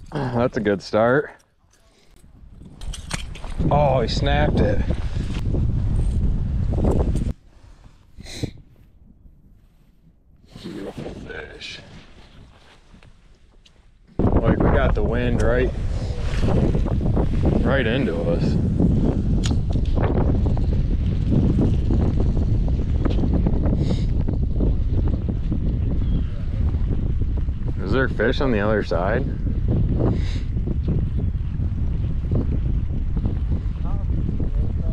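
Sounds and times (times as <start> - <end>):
wind buffeting microphone: 2.1 - 13.0, 14.1 - 34.9.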